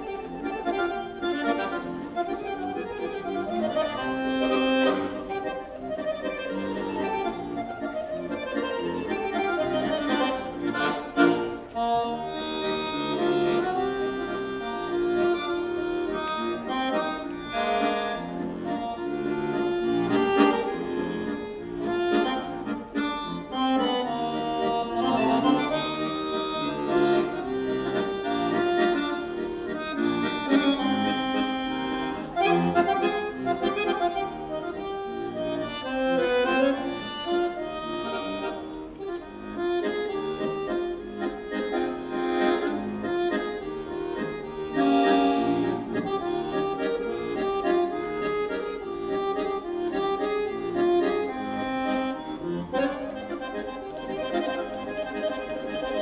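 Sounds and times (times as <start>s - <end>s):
button accordion playing: 0.0s - 56.0s.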